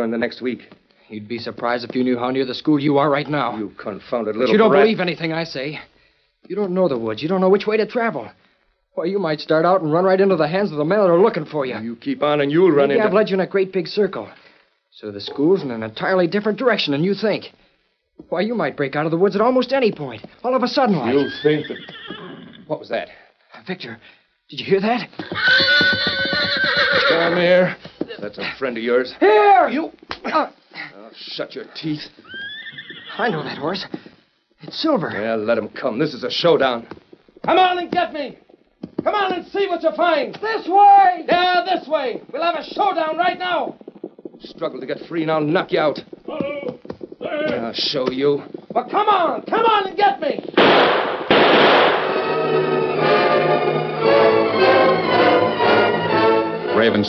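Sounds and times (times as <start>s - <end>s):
horse whinnying: 21.0s - 22.7s, 25.2s - 27.8s, 32.2s - 33.9s
loud sharp noise bursts: 50.6s - 52.6s
orchestral string music: 52.1s - 57.0s.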